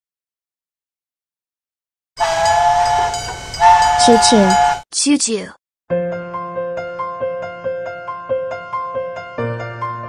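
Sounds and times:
cartoon steam train whistle: 0:02.2 - 0:04.8.

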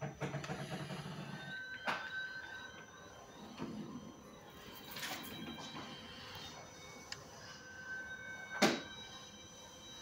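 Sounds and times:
low drone from television: 0:00.2 - 0:10.0.

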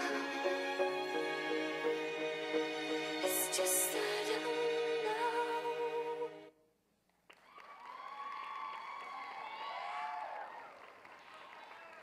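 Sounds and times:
audience applause: 0:07.3 - 0:12.0
high-pitched cheering and whoops: 0:07.4 - 0:12.0.

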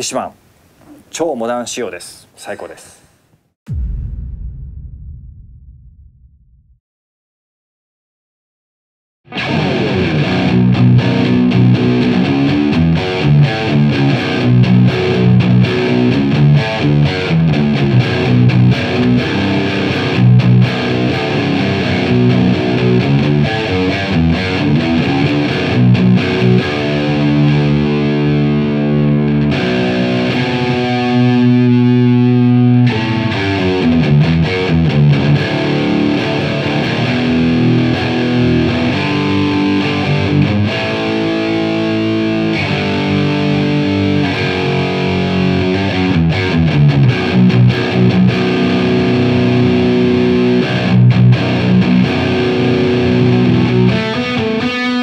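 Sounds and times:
guitar chord ringing: 0:09.3 - 0:55.0
heavy distorted electric guitar riffing: 0:09.3 - 0:55.0.

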